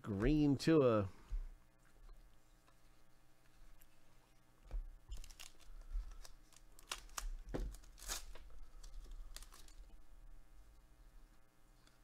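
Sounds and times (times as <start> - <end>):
foil wrapper tearing and crinkling: 5.1 - 9.9.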